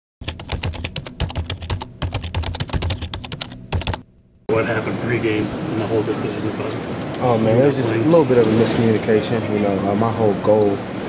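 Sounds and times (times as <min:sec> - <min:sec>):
rapid keyboard typing: 0:00.2 - 0:04.1.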